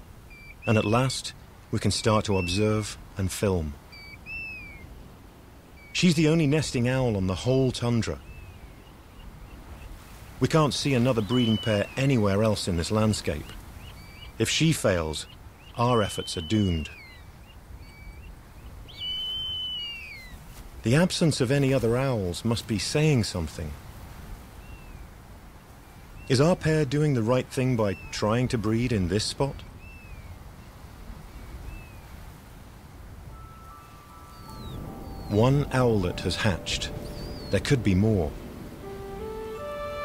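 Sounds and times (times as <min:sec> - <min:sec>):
faint bird calls: 0:00.2 - 0:03.0, 0:03.8 - 0:05.0, 0:08.1 - 0:20.6, 0:27.6 - 0:32.3, 0:33.2 - 0:40.0
bird whistled call: 0:00.3 - 0:00.7, 0:04.0 - 0:04.9, 0:11.1 - 0:12.0, 0:15.6 - 0:18.3, 0:18.9 - 0:20.4, 0:33.3 - 0:37.7
faint short whistles: 0:19.1 - 0:20.0
soft background music: 0:33.3 - 0:40.0.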